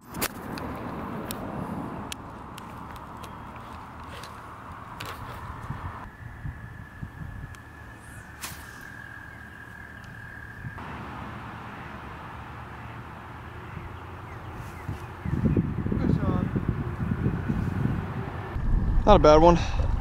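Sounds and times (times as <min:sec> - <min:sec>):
wind rumble on microphone: 0:05.0 - 0:08.1, 0:14.5 - 0:20.0.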